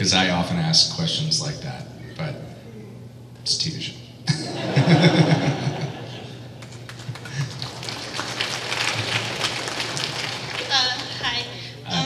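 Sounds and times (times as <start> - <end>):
audience applauding: 6.5 - 11.3.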